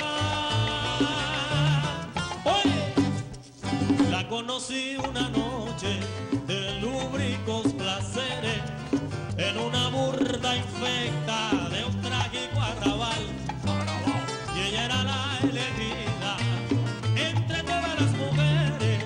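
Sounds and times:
stepping bass line: 0.0 - 4.3, 5.0 - 19.0
band playing son music: 0.0 - 19.0
plucked strings: 5.0 - 19.0.

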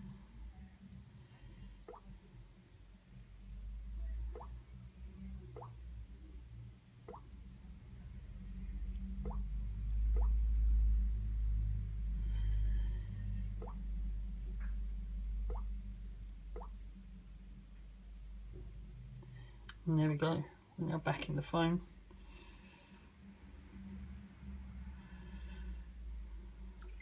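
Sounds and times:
low rumble: 7.6 - 19.3.

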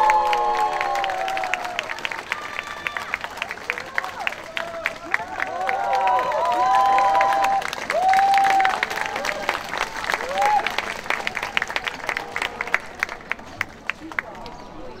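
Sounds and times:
audience applause: 0.0 - 15.0
cheering voices: 0.0 - 15.0.

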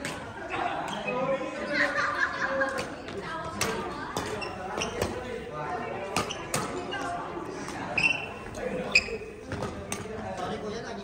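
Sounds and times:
voices talking in background: 0.0 - 11.0
racket striking shuttlecock: 2.7 - 5.2, 6.1 - 6.8.

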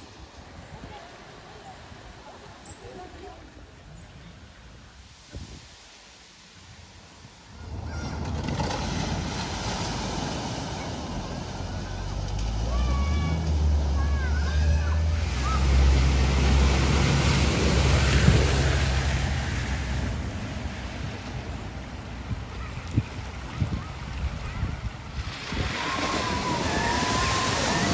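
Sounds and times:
cars splashing through water: 4.9 - 27.9
car engines running low: 7.5 - 27.9.

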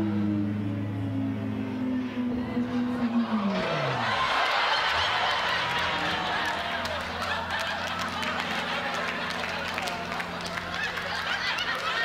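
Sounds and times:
steady low hum: 0.0 - 12.0
studio audience laughing: 2.8 - 12.0.

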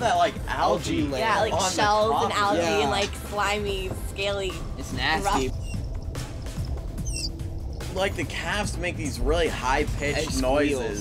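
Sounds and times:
background music: 0.0 - 11.0
manatee chirping underwater: 7.0 - 7.4.

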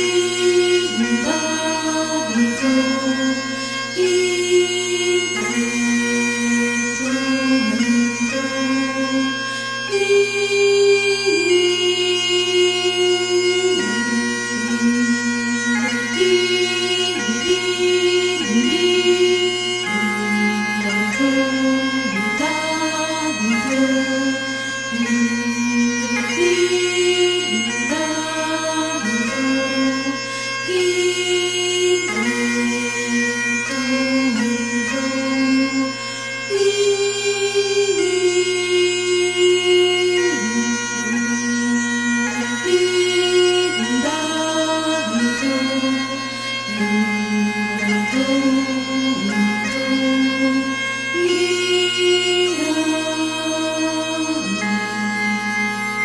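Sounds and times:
bagpipe playing over drone: 0.0 - 56.0.

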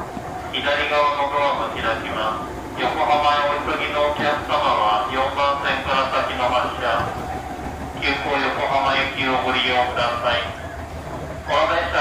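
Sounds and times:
train wheels rumbling on rail: 0.0 - 12.0
onboard announcement voice: 0.3 - 10.8, 11.4 - 12.0.

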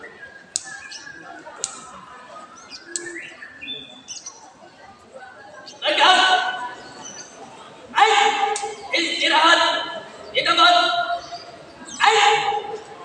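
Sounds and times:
indistinct background voices: 0.0 - 13.0
sharp clicks: 1.6 - 1.9, 8.5 - 8.8.

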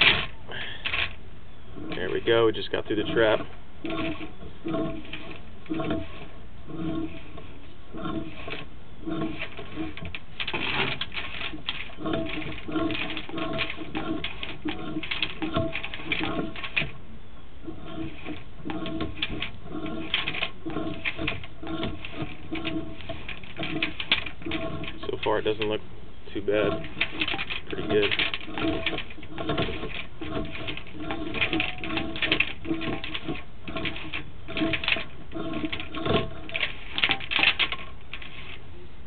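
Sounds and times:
cable clicking and rattling in drain: 0.0 - 17.0, 17.6 - 38.6
low squeaky tones: 0.0 - 39.0.

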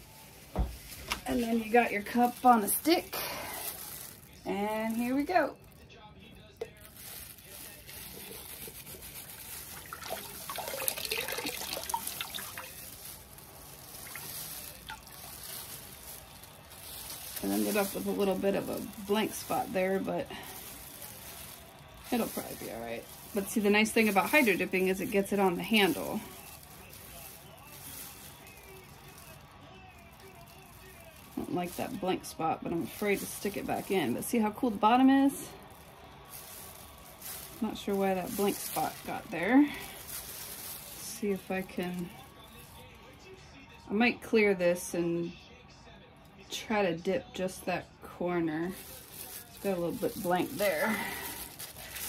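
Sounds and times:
water trickling and dripping: 9.5 - 13.0, 13.8 - 15.7
mug dipping into water: 9.7 - 12.7, 14.0 - 15.2.

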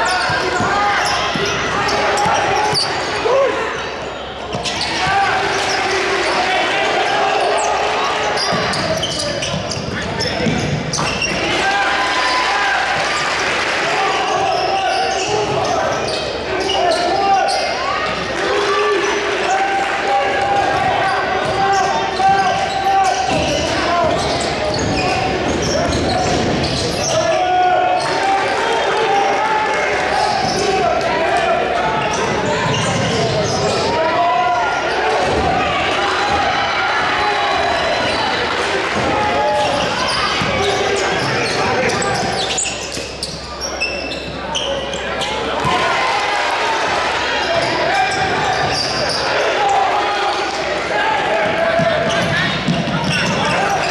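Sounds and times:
crowd and player voices: 0.0 - 53.9.

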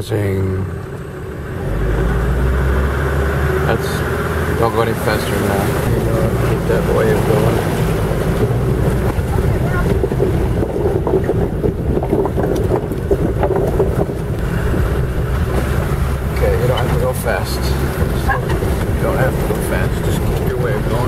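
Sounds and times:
car engine running at low speed: 0.0 - 21.0
water splashing against wheels: 0.0 - 21.0.

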